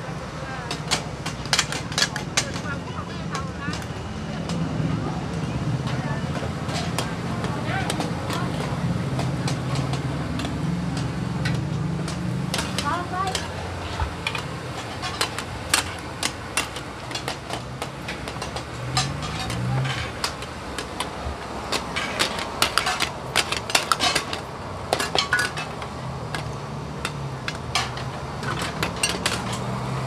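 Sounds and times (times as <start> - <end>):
utensils clanking on metal pans: 0.6 - 5.0, 5.7 - 30.0.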